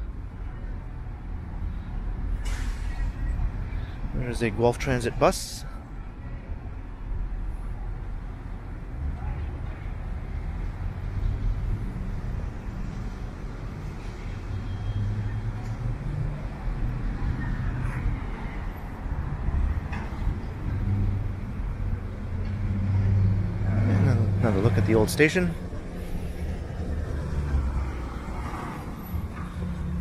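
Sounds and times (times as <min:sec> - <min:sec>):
vehicle engines rumbling: 0:00.0 - 0:30.0
vehicle approaching: 0:10.2 - 0:30.0.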